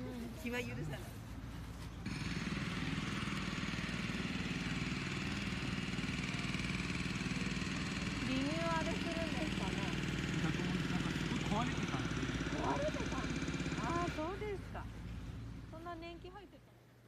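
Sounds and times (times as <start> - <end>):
steady engine drone: 0.0 - 17.0.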